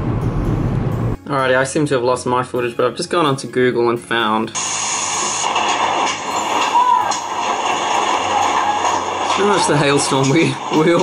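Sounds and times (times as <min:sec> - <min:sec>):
hail and rain pouring: 0:04.6 - 0:11.0.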